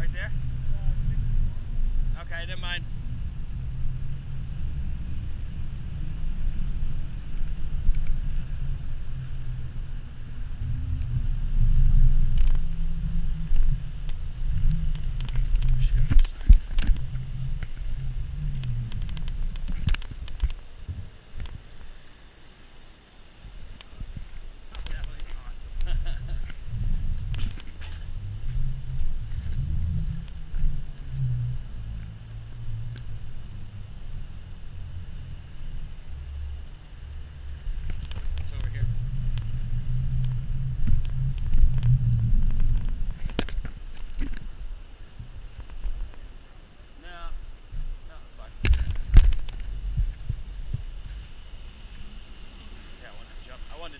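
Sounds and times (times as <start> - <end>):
bike rattling over bumps: 0.0 - 21.9, 23.5 - 46.4, 47.4 - 53.9
wind buffeting microphone: 0.0 - 22.0, 23.4 - 46.4, 47.2 - 53.9.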